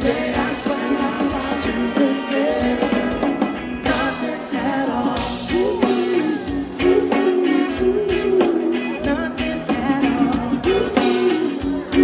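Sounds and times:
live band playing pop song: 0:00.0 - 0:12.0
person singing: 0:00.0 - 0:12.0.

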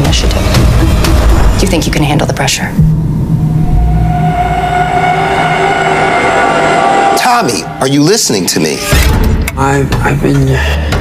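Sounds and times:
low rumble: 0:00.3 - 0:09.5
drone of held tones: 0:02.8 - 0:08.9.

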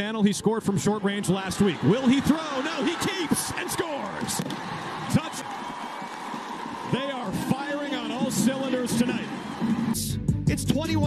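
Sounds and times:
man commentating: 0:00.0 - 0:04.4, 0:05.1 - 0:05.5, 0:06.9 - 0:11.0
stadium crowd noise: 0:00.0 - 0:10.2.

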